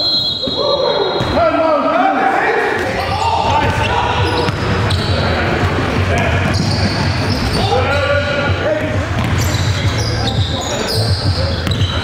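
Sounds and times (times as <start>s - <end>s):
sneakers squeaking: 0.0s - 1.5s, 2.7s - 12.0s
players' voices in hall: 0.0s - 12.0s
basketball bouncing on court: 2.8s - 10.5s, 11.1s - 12.0s.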